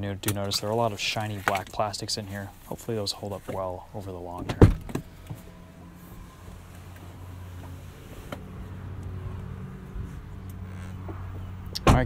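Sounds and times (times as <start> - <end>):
diesel engine humming: 0.0 - 12.0
sharp thump: 11.8 - 12.0.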